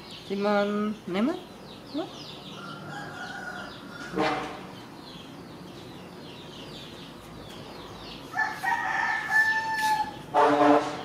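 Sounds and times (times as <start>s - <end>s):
faint small birds chirping: 0.0s - 10.3s
rooster crowing: 2.6s - 4.3s, 8.3s - 10.2s.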